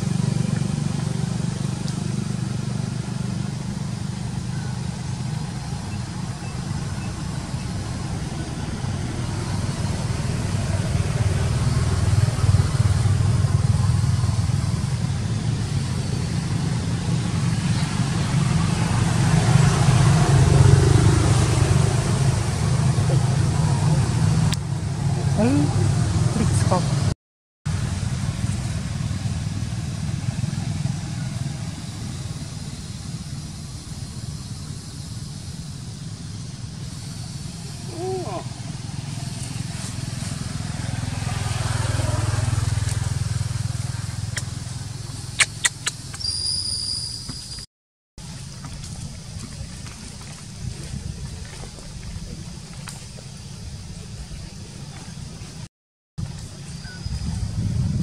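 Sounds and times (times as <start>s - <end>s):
low engine rumble: 0.0s - 46.6s, 48.2s - 58.0s.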